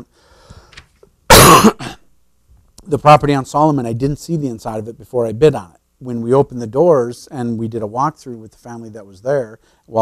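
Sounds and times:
man coughing: 0:01.3 - 0:02.1.

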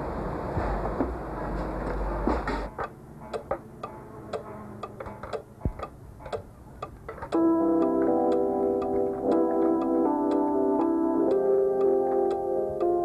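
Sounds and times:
mechanical clocks ticking: 0:02.7 - 0:13.0.

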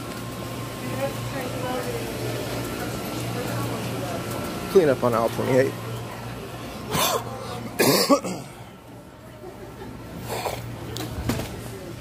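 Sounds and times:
ventilation hum: 0:00.0 - 0:12.0
faint background voices: 0:00.8 - 0:12.0.

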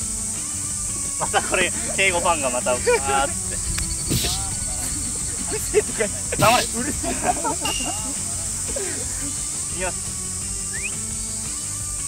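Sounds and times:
high-pitched hiss: 0:00.0 - 0:12.0
people's voices: 0:01.2 - 0:10.1.

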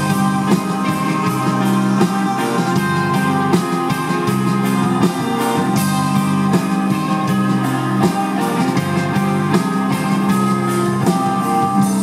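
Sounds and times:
drum kit with cymbal strokes: 0:00.0 - 0:12.0
electric guitar: 0:00.0 - 0:12.0.

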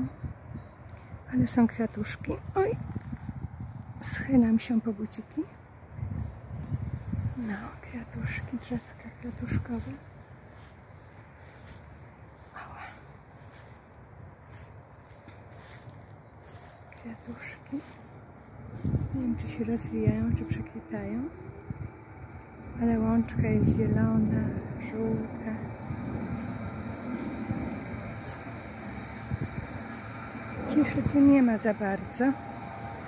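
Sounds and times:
distant aircraft: 0:00.0 - 0:33.0
distant road traffic rumble: 0:00.0 - 0:33.0
soft ticks: 0:00.8 - 0:01.1.

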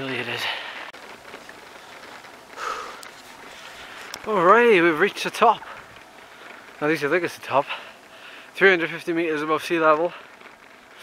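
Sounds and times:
hiss of wind and tyres: 0:00.2 - 0:11.0
cyclist breathing out hard: 0:00.4 - 0:00.9, 0:02.0 - 0:04.2, 0:05.7 - 0:06.8, 0:07.7 - 0:08.6.

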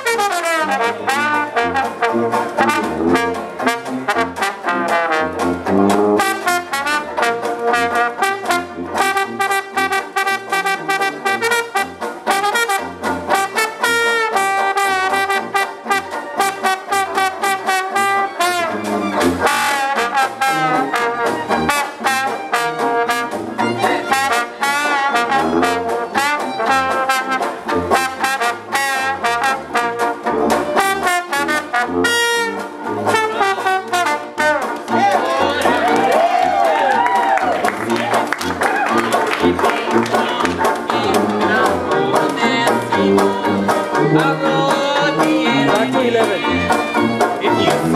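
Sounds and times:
jug band accompaniment: 0:00.0 - 0:47.9
trombone jazz solo: 0:00.0 - 0:47.9
pulsing bass line: 0:34.9 - 0:47.9
rhythmic short clicks: 0:37.5 - 0:47.9.

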